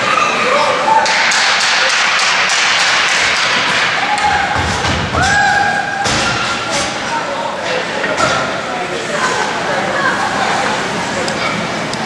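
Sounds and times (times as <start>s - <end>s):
background noise wash: 0.0s - 12.0s.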